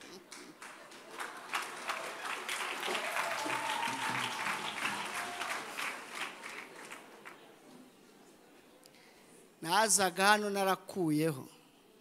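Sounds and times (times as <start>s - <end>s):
crowd applauding in a hall: 0.0s - 7.6s.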